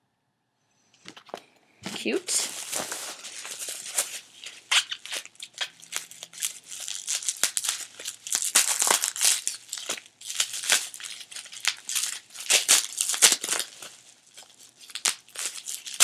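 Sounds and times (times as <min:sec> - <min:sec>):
paper rustling and crinkling: 0:01.0 - 0:16.0.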